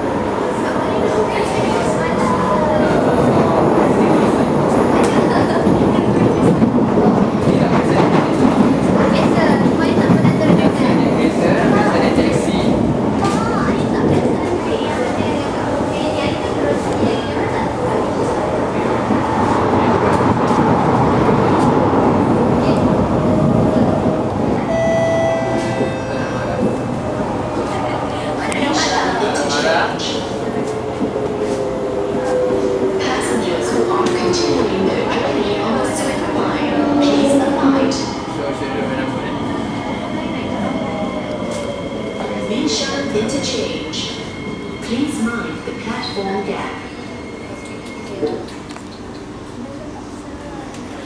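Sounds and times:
train wheels rumbling on rail: 0.0 - 51.0.

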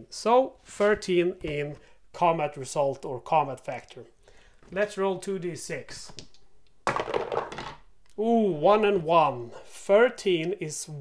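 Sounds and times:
dice clattering in tray: 6.9 - 7.9.

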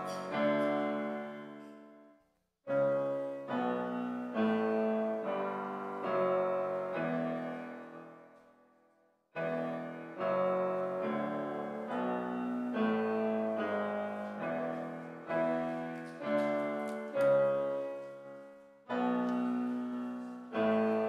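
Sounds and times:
piano chords: 0.0 - 2.1, 2.7 - 8.6, 9.4 - 21.0.

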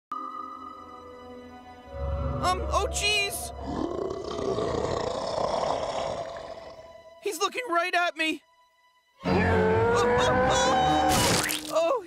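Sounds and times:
ghost's long rough roar: 3.6 - 6.8.

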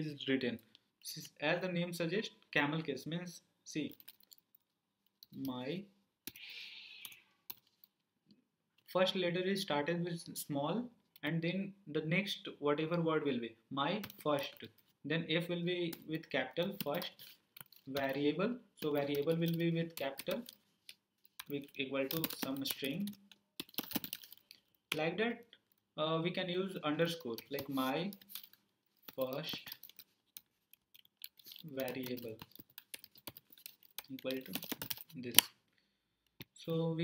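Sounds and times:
computer keyboard typing: 3.9 - 4.5, 7.0 - 7.8, 14.0 - 14.6, 15.9 - 20.6, 21.2 - 25.0, 27.0 - 35.5.

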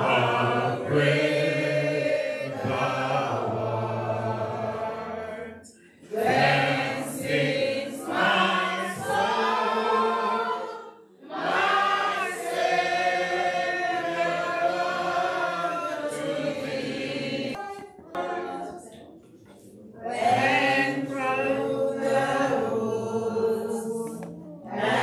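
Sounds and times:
congregation singing a hymn: 0.0 - 25.0.

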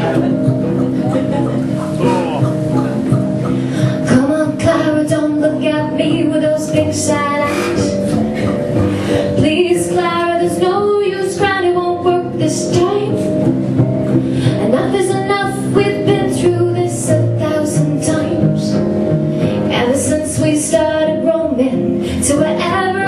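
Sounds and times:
plucked strings: 0.0 - 23.0
woman singing: 3.6 - 8.6, 9.2 - 13.5, 14.4 - 18.9, 19.6 - 23.0.

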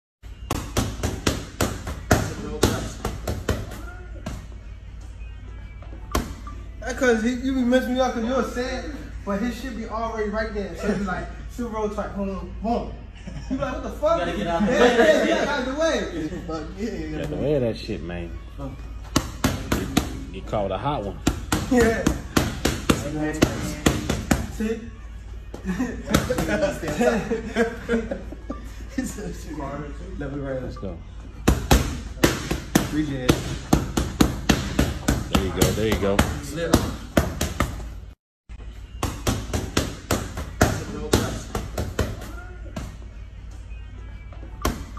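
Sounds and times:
boxing gloves striking mitts: 0.4 - 4.4, 21.2 - 24.6, 31.4 - 37.9, 39.0 - 42.4
men talking: 6.8 - 31.2, 32.1 - 33.7, 35.0 - 37.0.

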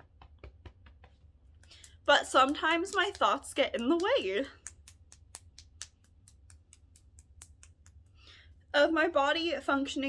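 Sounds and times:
fingertips tapping on hand: 1.7 - 8.2.

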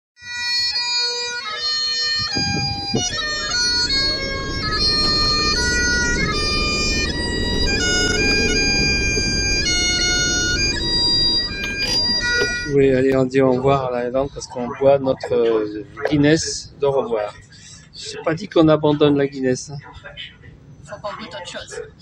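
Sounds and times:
bagpipe music: 0.2 - 13.2.

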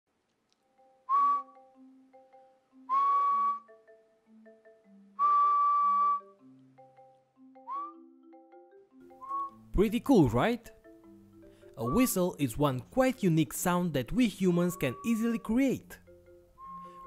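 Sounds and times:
mallet percussion music: 0.7 - 2.9, 3.6 - 5.2, 6.2 - 13.4, 14.1 - 17.0
person whistling steady notes: 1.1 - 1.7, 2.8 - 3.8, 5.2 - 6.4, 7.6 - 8.1, 9.1 - 9.7, 11.8 - 12.4, 14.5 - 15.4, 16.6 - 17.0.

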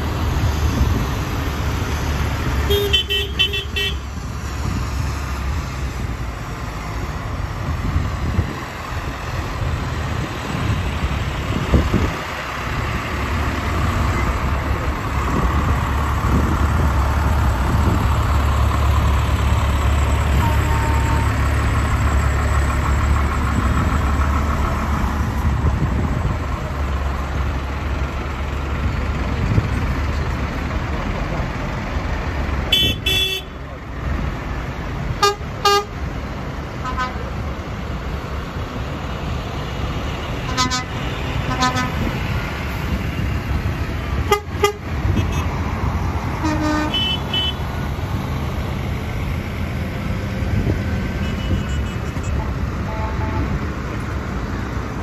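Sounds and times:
heavy vehicle engines rumbling: 0.0 - 55.0
tyres on wet tarmac: 0.0 - 55.0.

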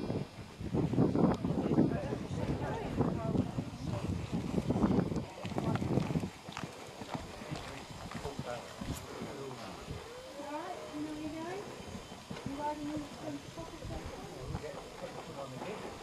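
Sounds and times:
horse hoofbeats: 3.3 - 16.0.

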